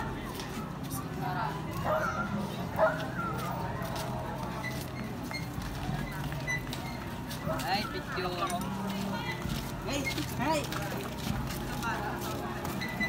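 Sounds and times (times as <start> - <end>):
people talking in the street: 0.0 - 13.0
steady outdoor background: 0.0 - 13.0.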